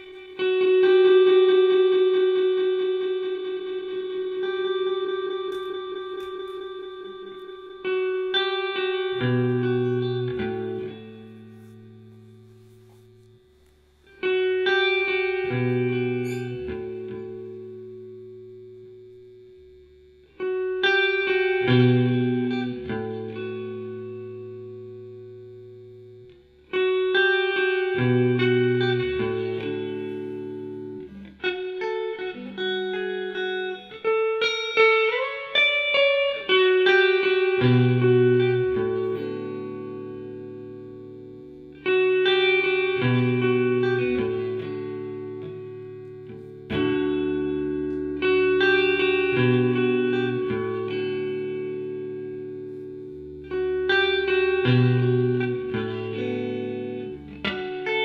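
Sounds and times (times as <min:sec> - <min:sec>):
electric guitar chords ringing: 0:00.0 - 0:58.0
electric guitar run of notes: 0:00.0 - 0:58.0
steady held guitar tone: 0:00.0 - 0:58.0.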